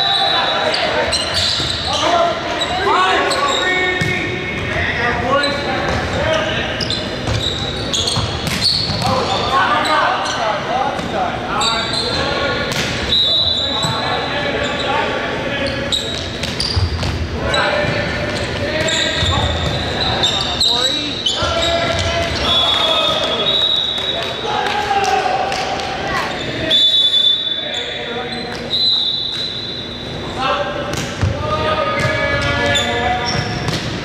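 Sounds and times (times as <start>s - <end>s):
players and spectators talking: 0.0s - 34.0s
sneakers squeaking on hardwood: 0.1s - 4.2s, 5.4s - 10.4s, 15.6s - 23.4s, 31.9s - 33.9s.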